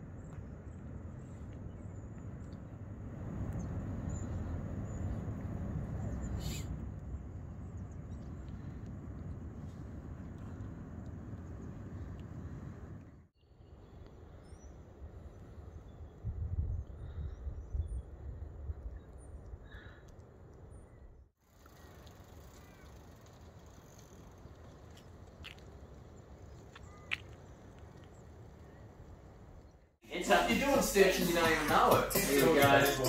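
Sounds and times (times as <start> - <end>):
bird calls: 6.0 - 6.8.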